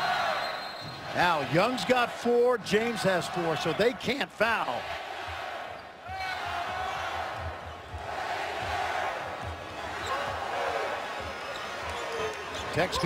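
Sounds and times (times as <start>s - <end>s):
arena crowd noise: 0.0s - 13.0s.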